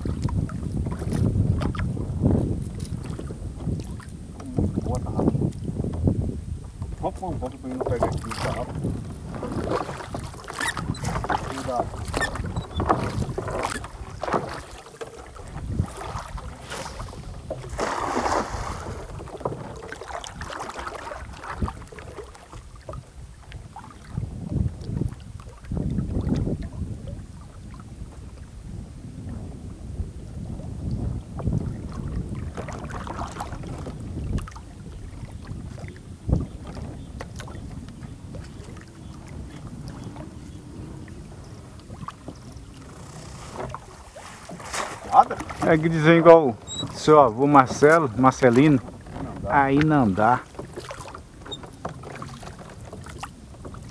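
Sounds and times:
wind on microphone: 0.0s - 53.9s
thumps against boat hull: 7.7s - 20.0s
water splashing off net: 15.9s - 19.2s, 43.7s - 45.7s.

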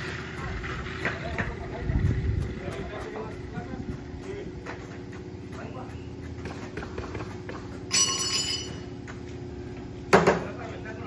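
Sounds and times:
steady low hum: 0.0s - 11.0s
metallic clang ringing: 7.9s - 8.9s.

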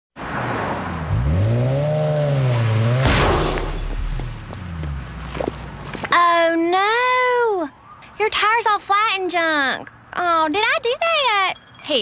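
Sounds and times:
car engine revving: 0.2s - 6.0s
short rushing burst: 2.9s - 4.5s.

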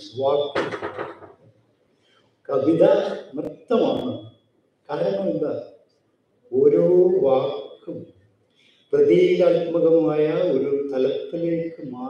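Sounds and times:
man speaking into a microphone: 0.0s - 0.9s, 2.5s - 4.3s, 4.9s - 5.6s, 6.5s - 8.1s, 8.9s - 12.0s.

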